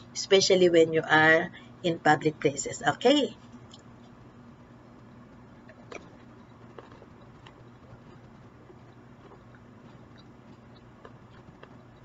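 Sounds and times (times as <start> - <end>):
steady low hum: 0.0 - 12.0
person chewing food: 5.6 - 12.0.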